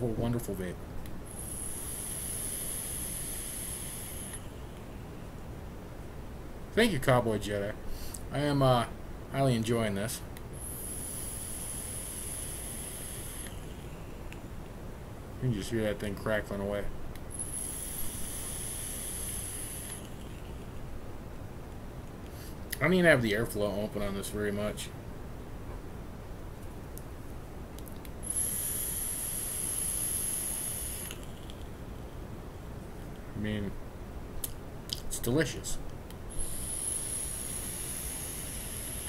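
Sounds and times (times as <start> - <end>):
soft airy noise: 0.0 - 39.0
vape coil sizzling: 1.3 - 4.9, 10.6 - 14.5, 17.2 - 20.8, 28.0 - 31.7, 36.2 - 39.0.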